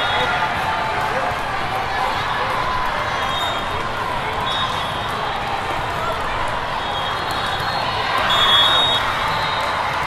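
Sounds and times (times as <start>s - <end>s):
hubbub of many voices: 0.0s - 10.0s
play from the courts: 0.0s - 10.0s
referee's whistle blast: 8.2s - 9.6s.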